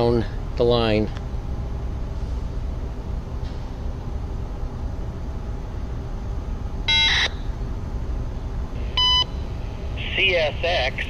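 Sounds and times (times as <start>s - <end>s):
low rumble: 0.0s - 11.0s
electronic beeps over radio: 6.9s - 7.4s, 9.0s - 9.3s
automated voice broadcast: 10.0s - 11.0s.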